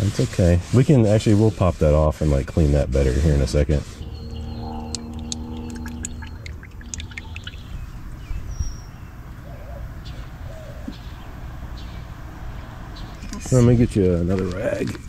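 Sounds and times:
birds chirping: 2.8s - 15.0s
small ticks: 4.7s - 7.6s
oil pouring through a funnel: 4.9s - 7.8s.

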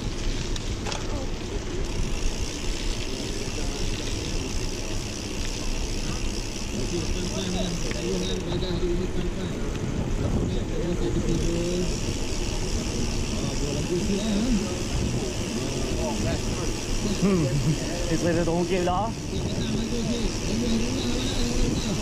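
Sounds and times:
faint voices: 0.7s - 22.0s
wind rushing over microphone: 8.4s - 16.7s, 19.1s - 22.0s.

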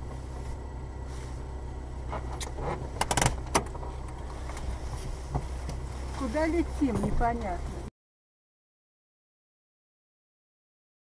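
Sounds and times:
car driving rumble inside cabin: 0.0s - 7.9s
sharp clicks and rattles: 2.1s - 4.7s.

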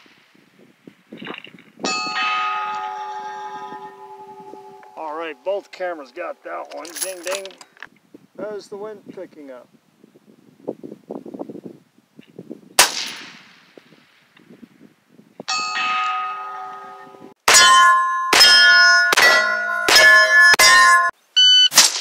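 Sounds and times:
bullets ringing on steel targets: 1.9s - 7.5s, 15.5s - 21.2s
suppressed rifle shot: 12.8s - 13.6s.

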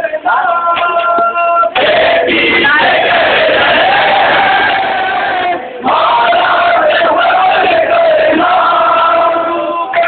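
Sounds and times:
crowd chanting together: 1.7s - 10.0s.

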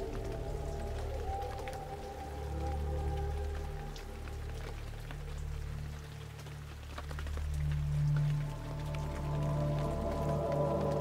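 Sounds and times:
low background music drone: 0.0s - 11.0s
rain drops ticking: 0.0s - 11.0s.

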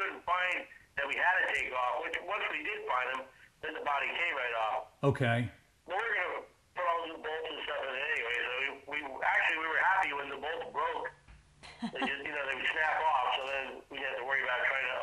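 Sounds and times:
man talking over telephone: 0.0s - 11.1s, 12.0s - 15.0s.

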